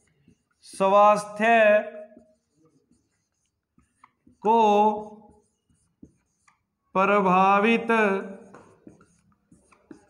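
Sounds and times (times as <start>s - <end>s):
marker scratching on whiteboard: 0.0s - 10.0s.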